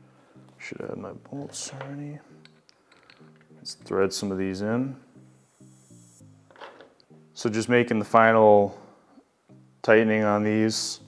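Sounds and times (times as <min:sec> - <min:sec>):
soft background music: 0:00.0 - 0:11.0
faint hiss: 0:04.8 - 0:06.4.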